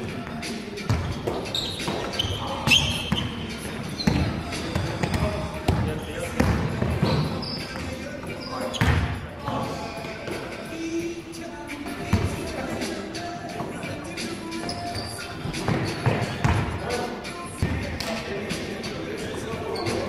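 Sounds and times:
basketball bouncing on court floor: 4.0s - 7.4s, 8.8s - 9.1s, 15.6s - 16.8s.

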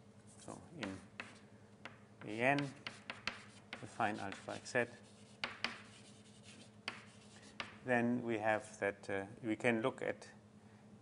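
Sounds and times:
writing on a board: 0.8s - 7.9s.

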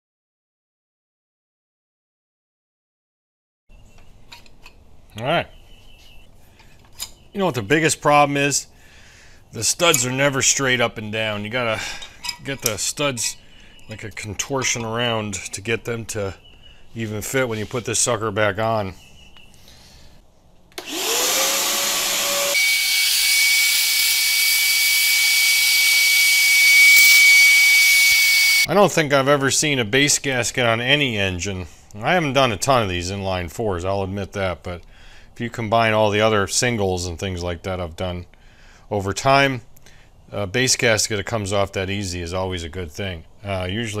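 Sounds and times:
shop vacuum motor whine: 20.8s - 28.7s
high whistle of vacuum hose: 20.9s - 28.7s.

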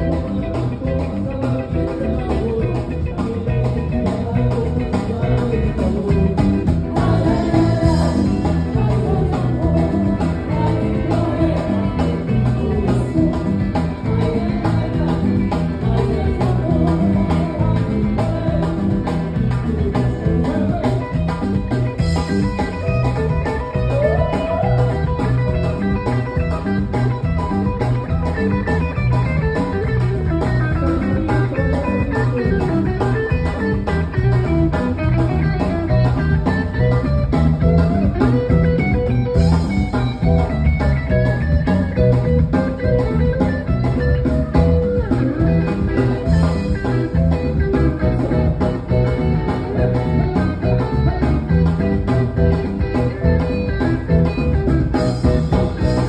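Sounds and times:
electric guitar melody: 0.0s - 56.0s
live band playing: 0.0s - 56.0s
pulsing bass rhythm: 0.0s - 56.0s.

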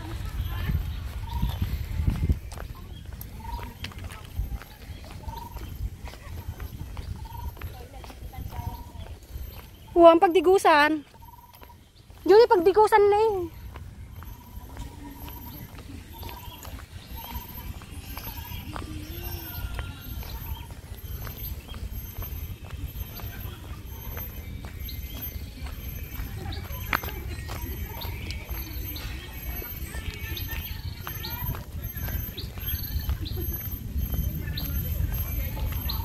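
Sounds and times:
footsteps on brick path: 0.0s - 36.0s
low wind rumble: 0.0s - 36.0s.

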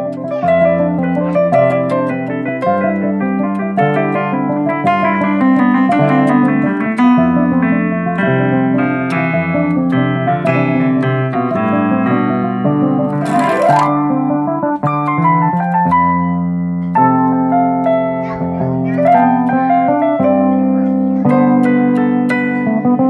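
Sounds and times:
jazzy electronic keyboard piano: 0.0s - 23.0s.

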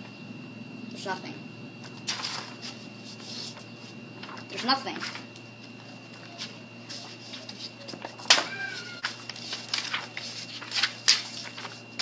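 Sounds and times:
paper rustling: 1.9s - 5.2s, 6.2s - 12.0s.

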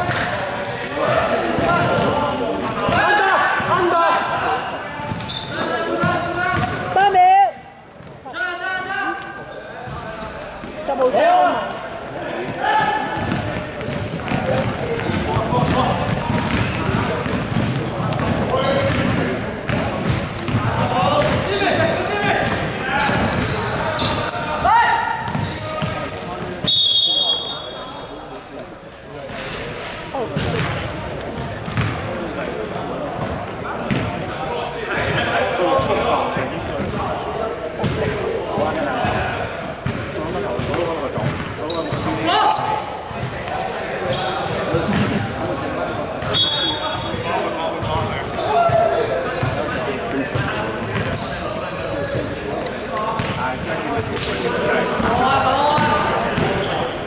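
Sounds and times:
players' voices echoing: 0.0s - 57.0s
basketball bouncing on wooden floor: 12.8s - 21.4s, 25.3s - 25.6s, 31.4s - 32.0s, 33.9s - 34.1s.

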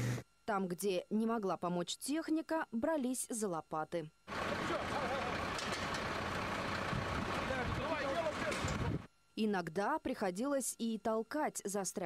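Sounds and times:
faint men's voices: 4.3s - 5.6s, 7.2s - 9.1s
truck engine running under load: 4.3s - 9.0s.

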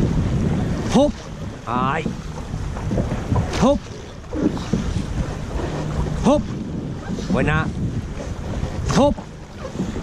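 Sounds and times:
oars in water: 0.0s - 10.0s
wind noise on microphone: 0.0s - 10.0s.

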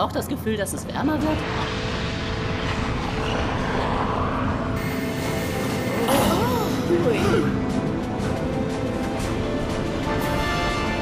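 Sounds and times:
steady low rumble: 0.0s - 10.2s
background music held notes: 5.0s - 11.0s.

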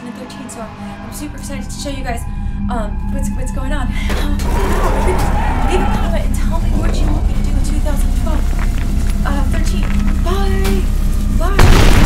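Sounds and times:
loud low rumble: 0.6s - 12.0s
sharp cracks: 8.0s - 12.0s.

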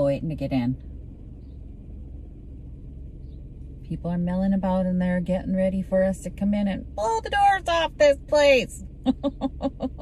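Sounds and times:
low rumble inside car cabin: 0.0s - 10.0s.

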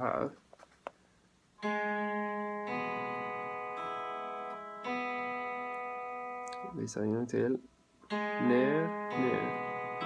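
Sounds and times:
electric guitar notes ringing: 1.6s - 7.2s, 8.0s - 10.0s.

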